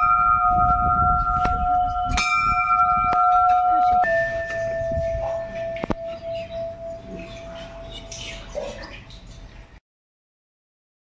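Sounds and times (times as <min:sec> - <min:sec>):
brass bell ringing: 0:00.0 - 0:08.7.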